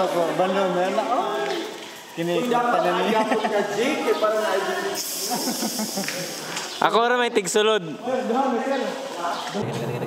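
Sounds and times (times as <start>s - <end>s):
man talking: 0.0s - 4.9s
steady high hiss: 0.0s - 10.0s.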